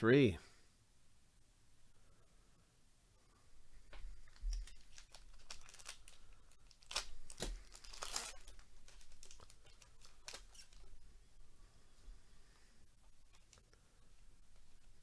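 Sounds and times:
light rustling of cards: 3.7s - 11.0s, 11.9s - 15.0s
wrapper tearing and crinkling: 4.3s - 10.9s.

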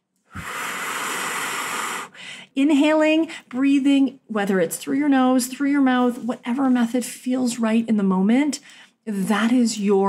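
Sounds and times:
woman breathing deeply: 0.3s - 2.6s.

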